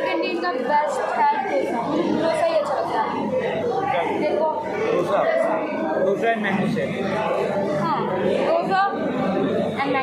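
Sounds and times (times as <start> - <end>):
indistinct crowd chatter: 0.0 - 10.0.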